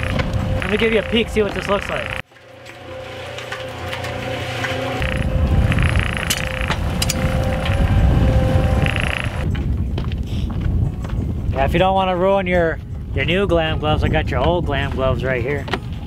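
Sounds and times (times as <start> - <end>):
wind rumble on microphone: 0.0 - 2.2, 5.0 - 16.0
cement mixer motor hum: 0.0 - 9.4.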